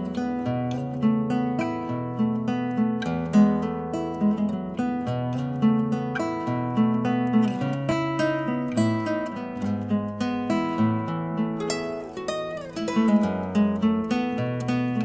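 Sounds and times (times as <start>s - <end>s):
acoustic guitar playing: 0.0s - 15.0s.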